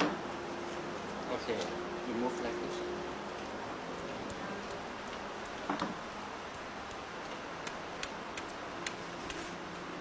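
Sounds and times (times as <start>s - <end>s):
sharp ticks: 4.3s - 5.7s, 6.4s - 9.4s.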